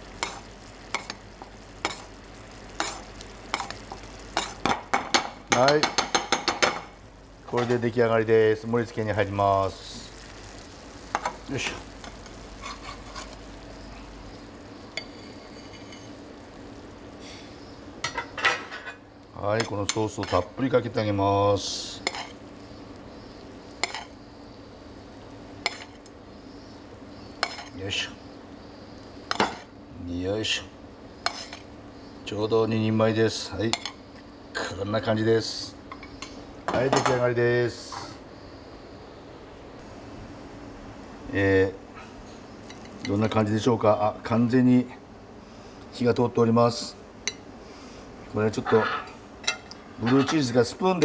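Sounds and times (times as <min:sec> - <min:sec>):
sauce simmering in pan: 0:00.0 - 0:18.2
steady low hiss: 0:00.0 - 0:51.0
spoon scraping pan: 0:00.2 - 0:02.1, 0:02.8 - 0:06.8, 0:12.0 - 0:13.4, 0:14.9 - 0:16.2, 0:19.6 - 0:20.6, 0:22.0 - 0:22.4, 0:23.8 - 0:24.2, 0:25.6 - 0:26.1, 0:27.4 - 0:27.8, 0:31.2 - 0:31.7, 0:48.6 - 0:50.5.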